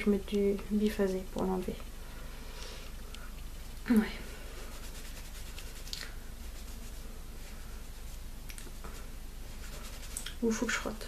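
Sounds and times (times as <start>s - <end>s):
fingers rubbing skin: 4.0s - 10.9s.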